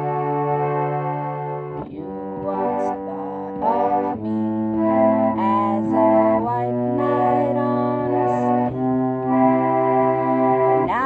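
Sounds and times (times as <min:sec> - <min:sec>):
pump organ chords: 0:00.0 - 0:11.0
woman singing: 0:01.8 - 0:09.1, 0:10.8 - 0:11.0.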